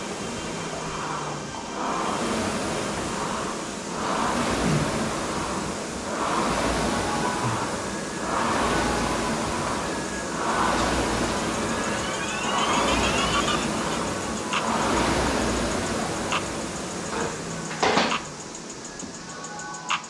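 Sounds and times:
rowing machine flywheel whooshing: 0:00.0 - 0:20.0.

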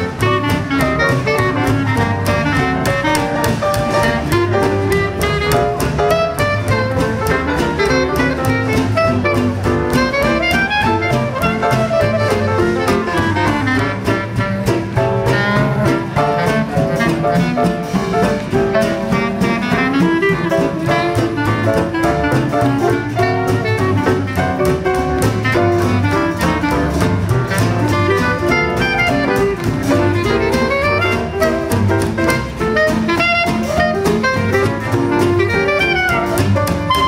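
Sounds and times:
clarinet melody: 0:00.0 - 0:37.0
piano: 0:00.0 - 0:37.0
string bass: 0:00.0 - 0:37.0.

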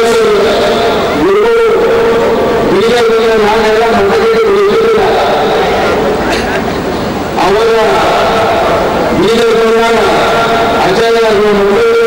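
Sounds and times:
man speaking over public-address system: 0:00.0 - 0:12.0.

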